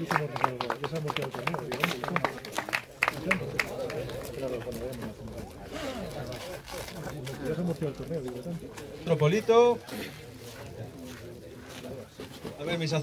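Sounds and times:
people clapping: 0.0 - 5.6
crowd chatting: 0.0 - 13.0.

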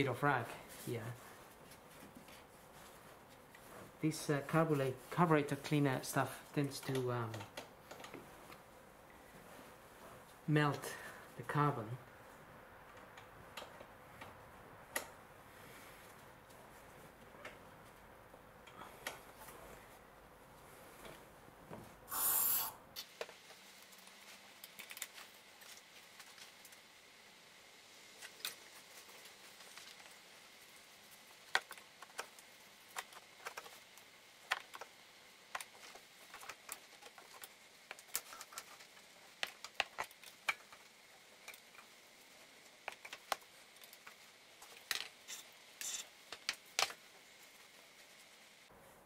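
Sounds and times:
aerosol spray hiss: 22.1 - 22.8.

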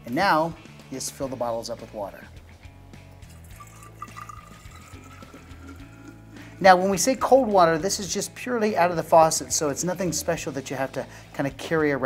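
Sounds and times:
water pouring into a glass bottle: 3.1 - 8.0.

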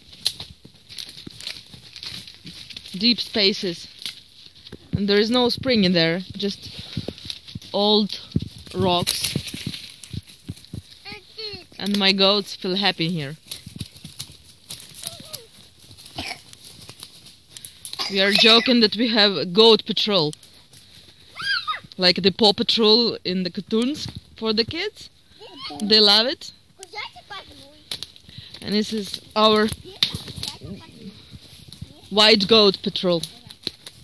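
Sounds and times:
child's footsteps in dry leaves: 0.0 - 22.0, 25.2 - 34.0
hooves crunching dry leaves: 0.0 - 34.0.

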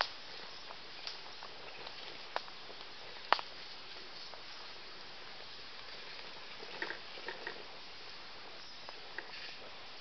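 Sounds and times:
faint hiss: 0.0 - 10.0
toy car crawling over stones: 5.4 - 7.8, 8.5 - 9.9.

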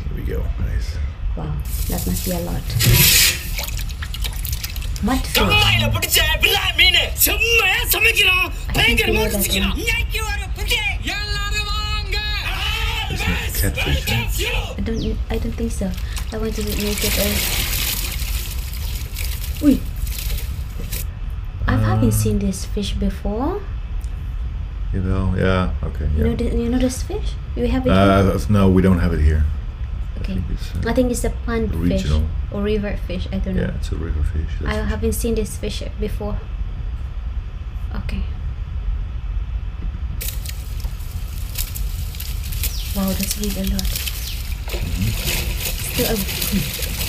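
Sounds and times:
steady low rumble: 0.0 - 47.0
fish splashing and scraping on mat: 1.7 - 5.2, 15.9 - 21.0, 40.2 - 47.0
man speaking: 5.3 - 11.1, 12.4 - 14.8, 21.6 - 22.4, 31.7 - 32.4, 33.6 - 34.8, 44.8 - 45.3.

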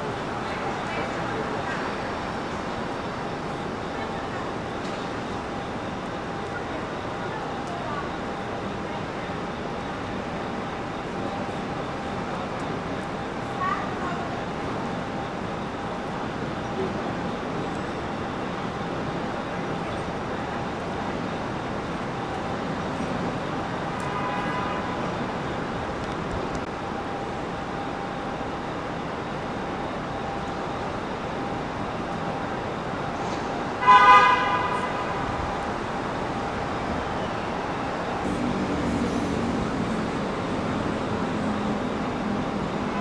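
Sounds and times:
city street traffic: 0.0 - 43.0
faint car horn: 23.9 - 25.2, 33.8 - 35.4
car horn honking: 24.1 - 25.0, 33.8 - 35.2.

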